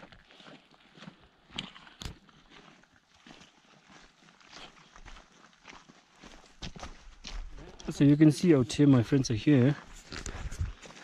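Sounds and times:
footsteps on rocky trail: 0.0s - 11.0s.

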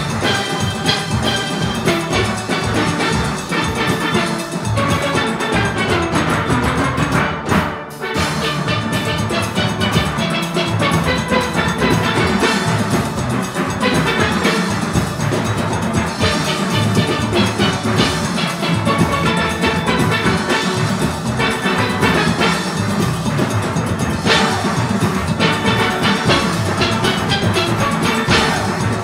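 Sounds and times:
drums and percussion: 0.0s - 29.0s
steel pans playing: 0.0s - 29.0s.

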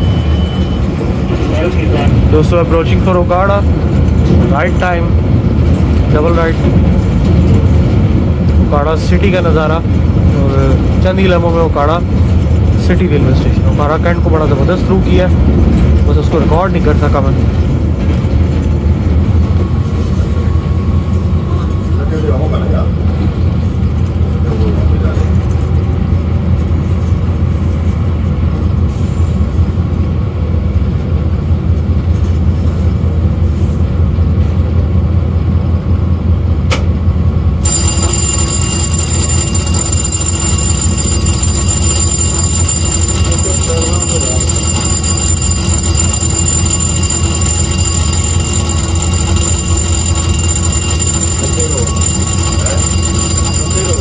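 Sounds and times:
locomotive engine drone: 0.0s - 54.0s
rolling track noise: 0.0s - 54.0s
high steady whine: 37.6s - 54.0s.

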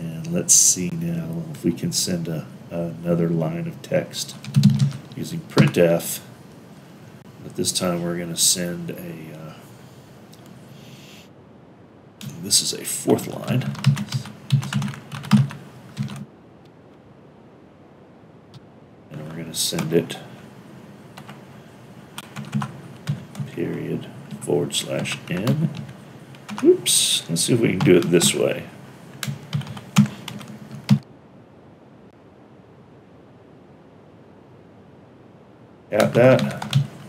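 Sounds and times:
faint room tone hiss: 0.0s - 37.0s
computer keyboard typing: 4.3s - 5.8s, 13.5s - 16.2s, 22.2s - 23.5s, 24.3s - 26.7s, 27.8s - 28.4s, 29.2s - 31.0s, 36.0s - 37.0s.

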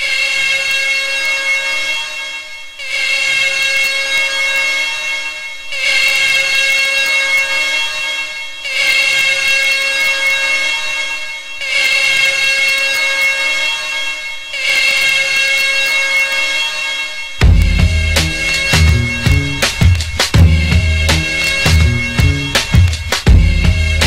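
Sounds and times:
held siren-like tones: 0.0s - 24.0s.

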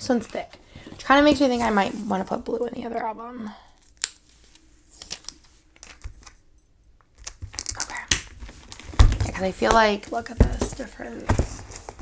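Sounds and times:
plastic album pages rustling: 0.1s - 2.6s, 3.8s - 6.1s, 7.2s - 12.0s.

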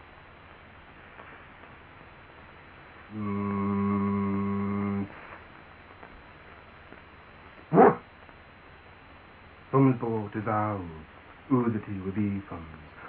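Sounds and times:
vocal sound sliding down: 3.1s - 5.1s
man humming a steady tone: 3.1s - 5.4s, 7.7s - 8.0s.

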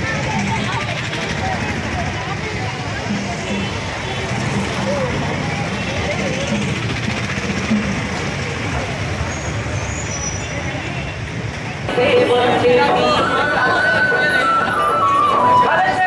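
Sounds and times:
people's voices: 0.0s - 16.0s
traffic running past: 0.0s - 16.0s.

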